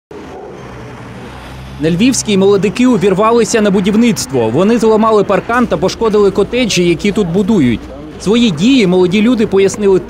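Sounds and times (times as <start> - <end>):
cars driving past: 0.1 - 10.0.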